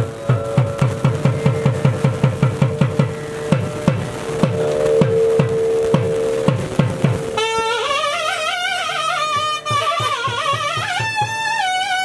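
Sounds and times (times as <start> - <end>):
drum strokes dropping in pitch: 0.0 - 12.0
reed horn holding steady note: 0.0 - 12.0.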